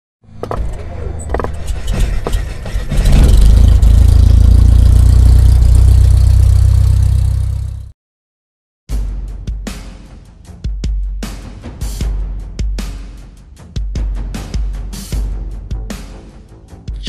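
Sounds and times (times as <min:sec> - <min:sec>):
deep steady rumble: 0:00.4 - 0:07.9.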